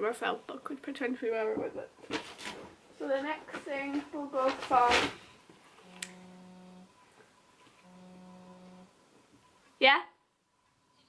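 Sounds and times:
mobile phone vibrating: 5.8s - 7.0s, 7.8s - 9.0s.

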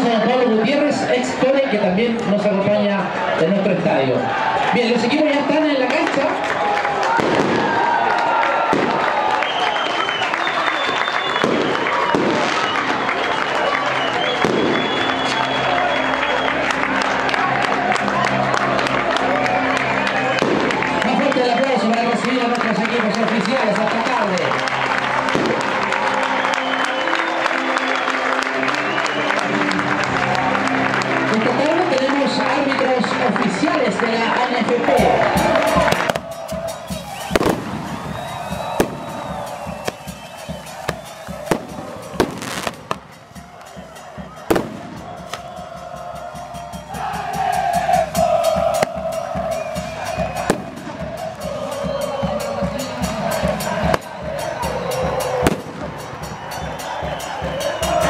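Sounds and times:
crowd voices: 0.0s - 58.0s
loud stadium music: 0.0s - 58.0s
firecracker bangs: 7.1s - 7.9s, 8.7s - 9.2s, 11.3s - 13.0s, 14.4s - 15.0s, 35.8s - 45.5s, 50.4s - 51.2s, 55.4s - 56.4s.

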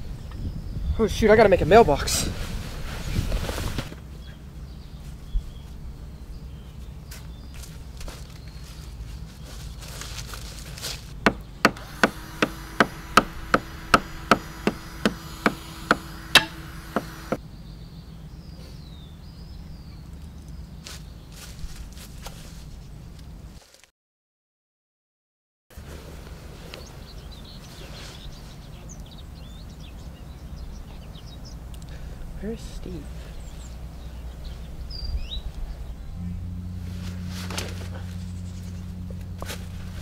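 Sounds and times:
hammer blows on wood: 11.3s - 17.4s.

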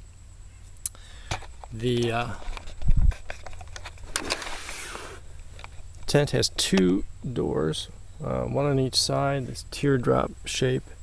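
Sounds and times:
faint low rumble: 0.0s - 11.0s
tent fabric rustling and scraping: 2.1s - 5.2s.

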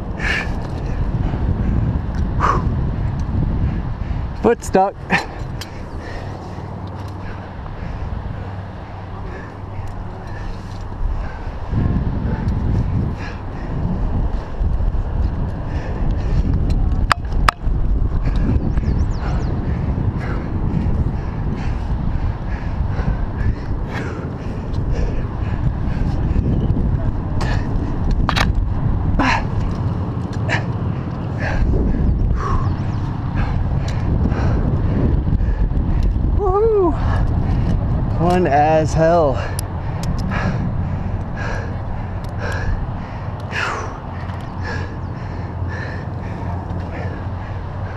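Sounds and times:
climbing gear clicks: 0.1s - 3.4s, 4.6s - 11.7s, 12.4s - 47.9s.

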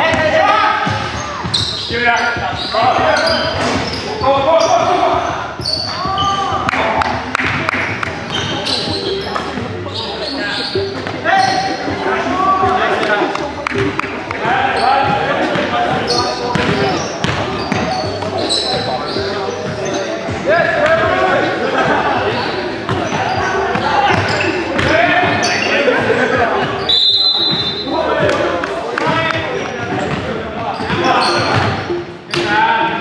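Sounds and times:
sneaker squeaks: 0.0s - 12.0s, 13.7s - 21.6s, 22.4s - 32.6s
players calling: 0.0s - 33.0s
basketball bouncing on court: 15.0s - 18.9s, 22.9s - 25.6s, 29.1s - 31.8s.

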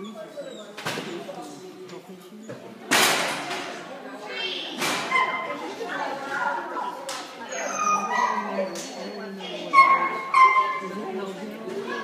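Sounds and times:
dog yipping and whining: 7.5s - 10.8s.

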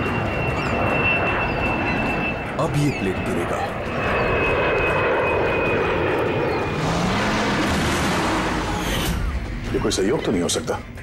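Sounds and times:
jet engines whining: 0.0s - 10.6s
rushing noise: 6.4s - 9.5s.

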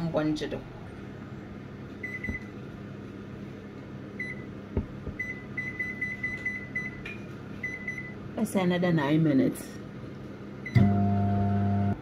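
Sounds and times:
microwave electrical hum: 0.0s - 12.0s.

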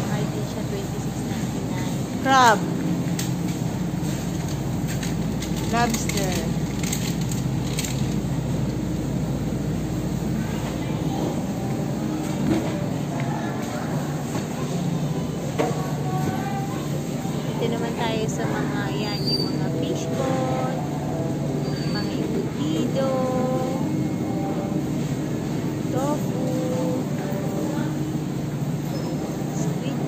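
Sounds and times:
shoppers' voices: 0.0s - 30.0s
steady low hum: 0.0s - 30.0s.

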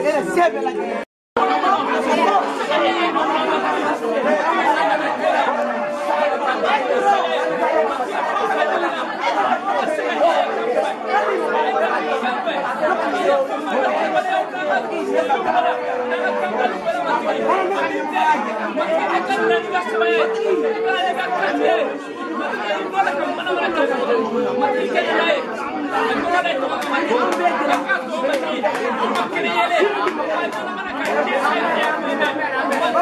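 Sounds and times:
children praying aloud: 0.6s - 33.0s.

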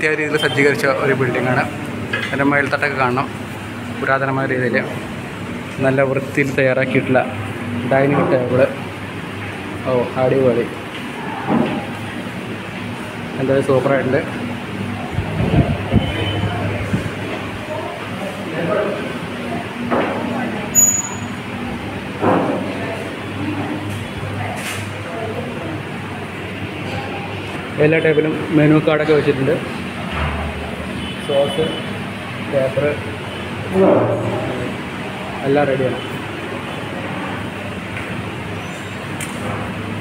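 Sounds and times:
restaurant background din: 0.0s - 40.0s
faint murmuring voices: 5.8s - 40.0s.

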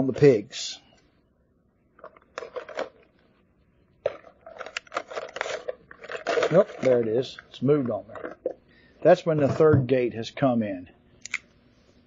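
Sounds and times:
papers rustling: 2.0s - 3.3s, 4.0s - 8.6s.

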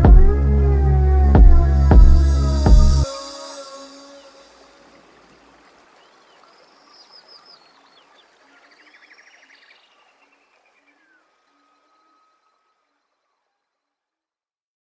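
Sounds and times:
faint low beat notes: 0.0s - 3.1s
birds chirping and trilling: 2.3s - 13.2s.

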